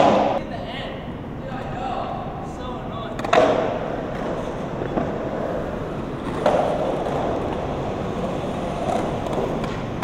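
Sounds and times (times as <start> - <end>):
skateboard wheels rolling on concrete: 0.0 - 10.0.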